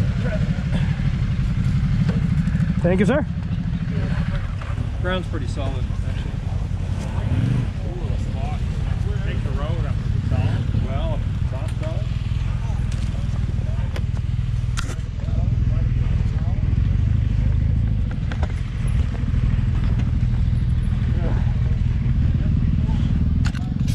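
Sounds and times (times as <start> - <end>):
motorcycle engines idling: 0.0 - 23.9.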